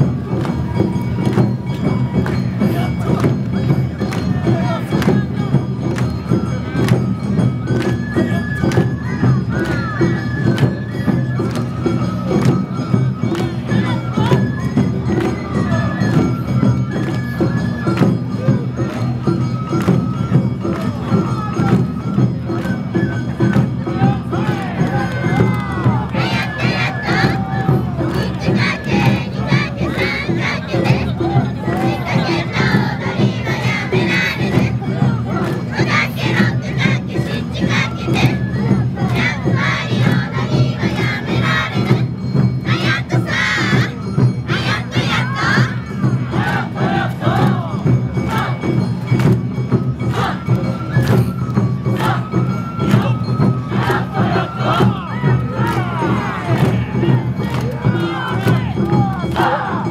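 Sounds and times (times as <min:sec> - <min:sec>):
festival band: 0:00.0 - 0:59.9
drums pulsing: 0:19.4 - 0:59.9
dancers shouting chanted calls: 0:24.0 - 0:48.7, 0:50.0 - 0:50.7, 0:51.9 - 0:59.9.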